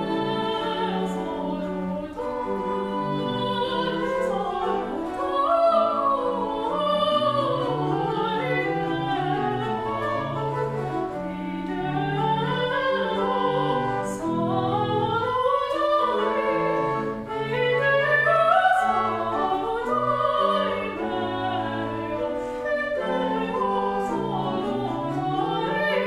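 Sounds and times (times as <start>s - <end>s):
instrumental accompaniment: 0.0s - 26.0s
woman singing operatic aria: 0.0s - 26.0s.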